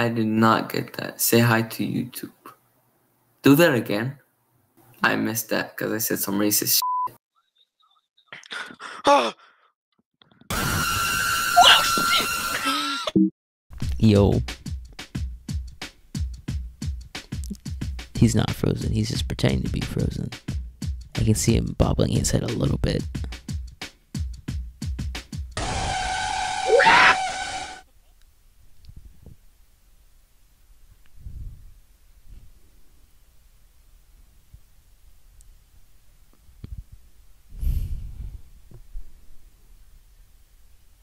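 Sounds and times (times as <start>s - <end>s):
person sighing: 8.4s - 9.7s
harsh noise blast with shrill tone: 10.5s - 12.6s, 25.6s - 27.9s
scream: 10.5s - 13.1s, 25.6s - 27.8s.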